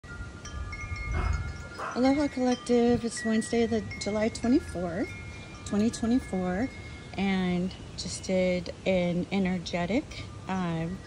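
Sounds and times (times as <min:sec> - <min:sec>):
chimes ringing: 0:00.0 - 0:07.9.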